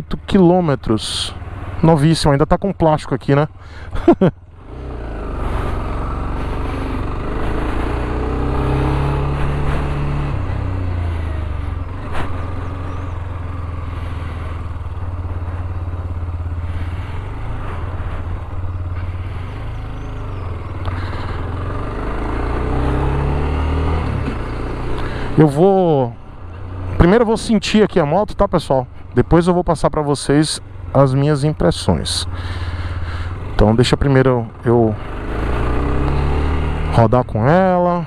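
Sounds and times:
motorcycle engine accelerating: 0.2 - 38.0.

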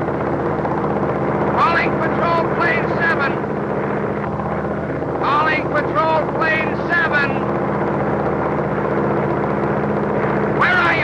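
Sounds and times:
piston aircraft engine drone: 0.0 - 11.0
man speaking: 1.6 - 3.4, 5.2 - 7.4, 10.6 - 11.0.

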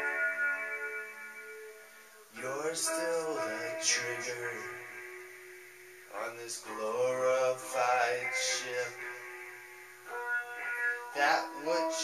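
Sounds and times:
guitar chord ringing: 0.0 - 12.0
person singing: 2.3 - 5.5, 6.1 - 9.7, 10.6 - 12.0.

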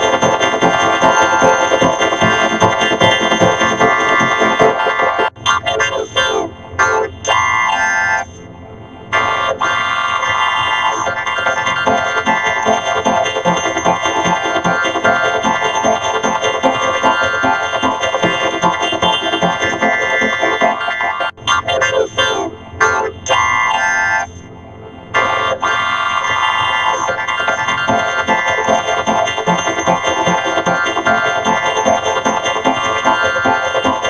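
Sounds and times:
buzzy distorted synthetic chord: 0.0 - 5.3, 8.4 - 21.3, 24.4 - 34.0
distorted buzzing synth tones: 9.2 - 21.3.

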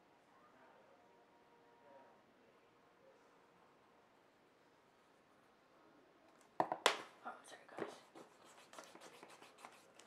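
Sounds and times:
pencil scratching on paper: 7.8 - 10.0.

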